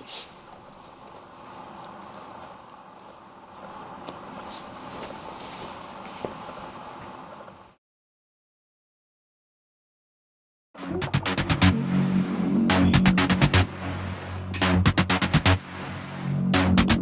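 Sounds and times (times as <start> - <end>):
steady room noise: 0.0 - 7.8, 10.9 - 17.0
footsteps on wooden floor: 3.6 - 7.2.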